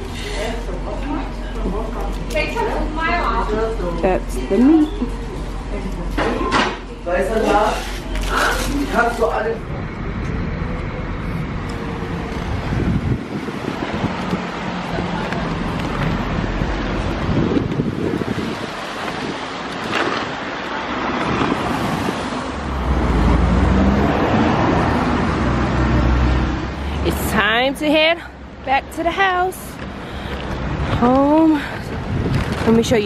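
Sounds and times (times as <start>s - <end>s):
street traffic: 0.0s - 33.0s
wind rumbling on microphone: 9.7s - 25.7s, 30.5s - 33.0s.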